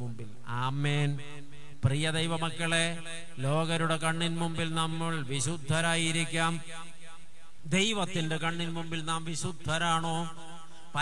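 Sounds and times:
man preaching into a microphone: 0.0s - 11.0s.

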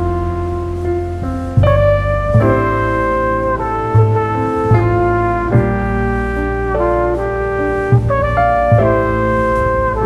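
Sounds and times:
brass instruments: 0.0s - 10.0s
steady bass line: 0.0s - 10.0s.

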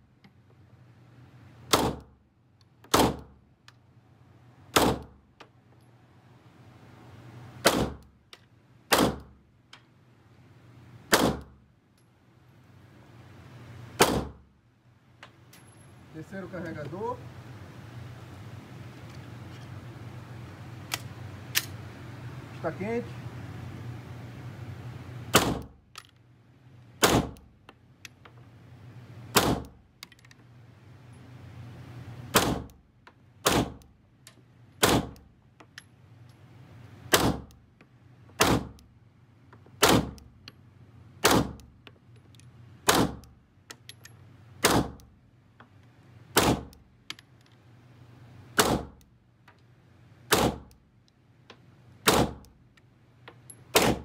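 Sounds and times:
pistol shots: 1.7s - 2.1s, 2.9s - 3.3s, 4.7s - 5.2s, 7.6s - 8.0s, 8.9s - 9.4s, 11.1s - 11.6s, 14.0s - 14.4s, 25.3s - 25.8s, 27.0s - 27.4s, 29.3s - 29.7s, 32.3s - 32.7s, 33.4s - 33.8s, 34.8s - 35.2s, 37.1s - 37.5s, 38.4s - 38.8s, 39.8s - 40.2s, 41.2s - 41.6s, 42.9s - 43.2s, 44.6s - 45.0s, 46.4s - 46.7s, 48.6s - 49.0s, 50.3s - 50.7s, 52.0s - 52.4s, 53.7s - 54.0s.

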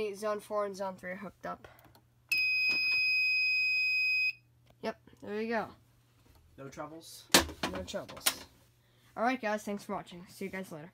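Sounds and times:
high-pitched alarm beep: 2.3s - 4.4s.

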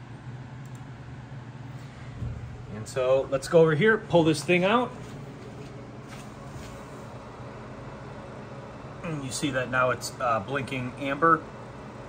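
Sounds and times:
server cooling fans whirring: 0.0s - 12.0s.

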